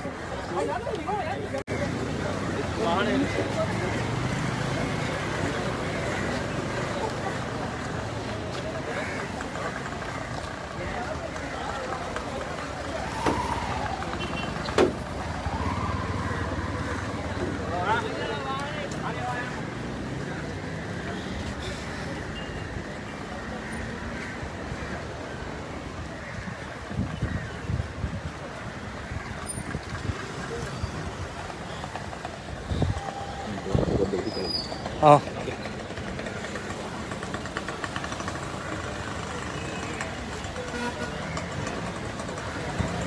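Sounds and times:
crowd commotion: 0.0 - 27.2, 27.9 - 43.0
road traffic passing: 0.0 - 43.0.

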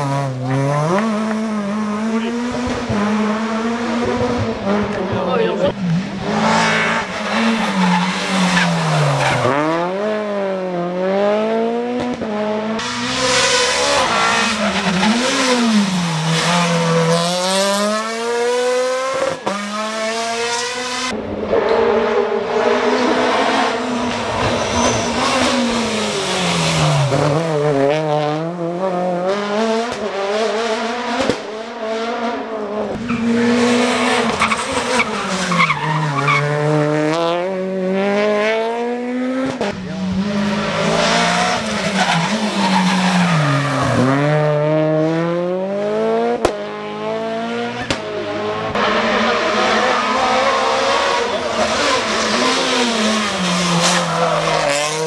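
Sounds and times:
rally car engines revving: 0.0 - 55.0
tyre squeal: 24.0 - 26.6.

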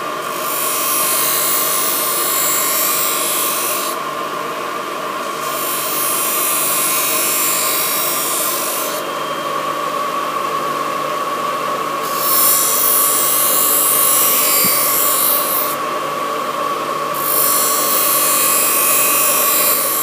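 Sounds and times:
sharpening machine whine: 0.0 - 4.2, 5.2 - 10.3, 12.0 - 20.0.

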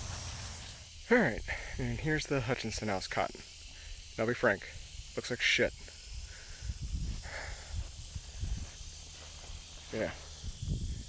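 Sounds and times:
faint high hiss: 0.0 - 11.0
low wind rumble on microphone: 6.1 - 11.0.

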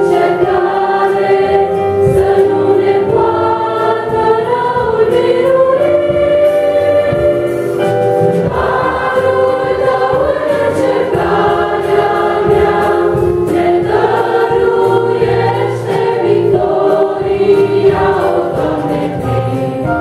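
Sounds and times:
electric keyboard accompaniment: 0.0 - 20.0
vocal group singing a hymn: 0.0 - 20.0.

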